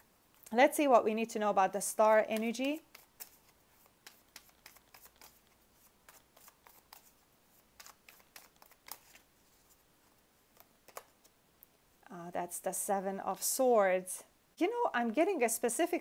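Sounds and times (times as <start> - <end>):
cards being shuffled: 2.1 - 9.8, 10.5 - 11.4.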